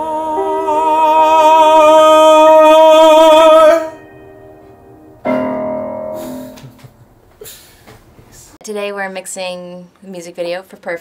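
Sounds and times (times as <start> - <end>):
piano chord ringing: 0.4 - 7.4.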